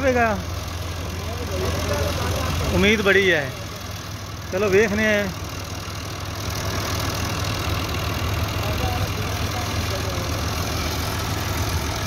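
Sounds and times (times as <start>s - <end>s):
tractor diesel engine under load: 0.0s - 12.0s.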